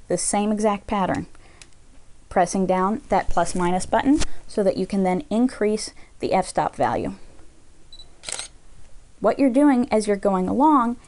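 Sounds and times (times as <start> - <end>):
camera autofocus beep: 7.9 - 8.5
camera shutter clack: 8.2 - 8.5.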